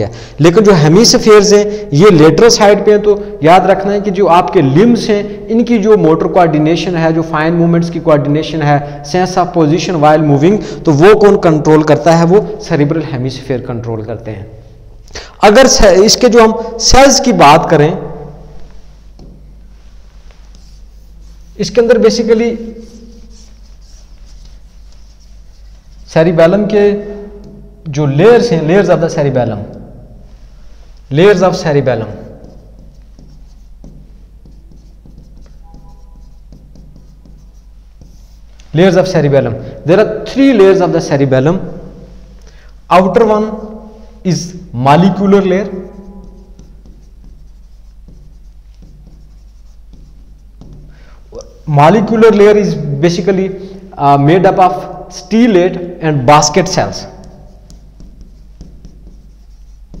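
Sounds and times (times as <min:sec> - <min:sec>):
steady low hum: 0:00.0 - 1:00.0
pen tapping and scratching on glass: 0:32.3 - 0:38.4, 0:45.9 - 0:51.0, 0:57.0 - 1:00.0.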